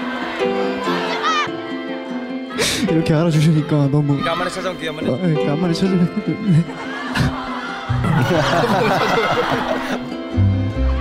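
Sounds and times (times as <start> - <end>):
background music with deep bass: 0.0 - 11.0
laughter: 6.1 - 10.2.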